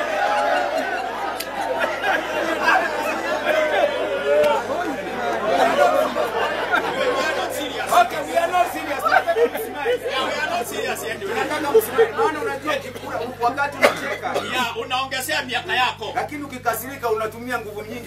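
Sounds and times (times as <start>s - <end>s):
audience chatter: 0.0s - 14.6s.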